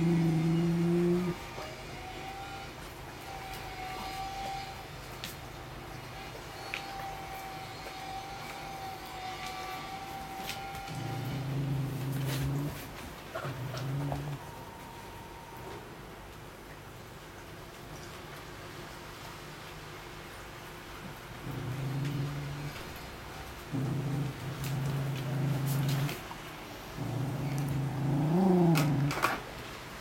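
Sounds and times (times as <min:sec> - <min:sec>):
dog making low vocal sound: 0:00.0 - 0:01.4, 0:10.9 - 0:14.5, 0:21.4 - 0:23.0, 0:23.6 - 0:26.3, 0:26.9 - 0:29.4.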